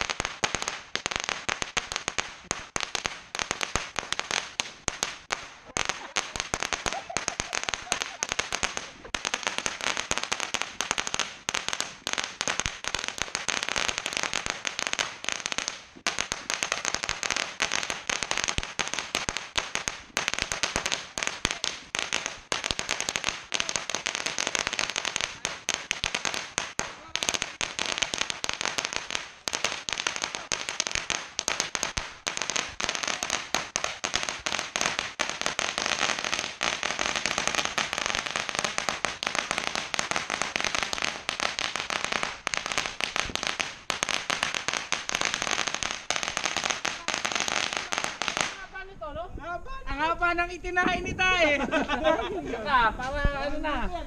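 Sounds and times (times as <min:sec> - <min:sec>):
firecrackers crackling: 0:00.0 - 0:54.0.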